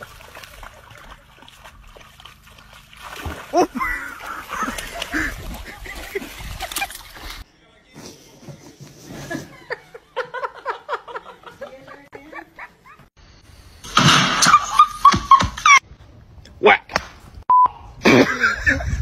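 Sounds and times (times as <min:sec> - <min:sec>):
dog splashing in water: 0:00.0 - 0:07.4.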